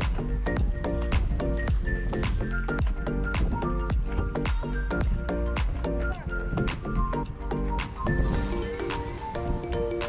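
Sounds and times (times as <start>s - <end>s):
instrumental music with beat: 0.0s - 10.0s.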